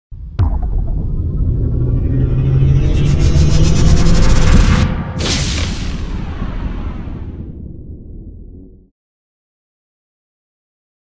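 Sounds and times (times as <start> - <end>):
deep rumble: 0.1 - 8.9.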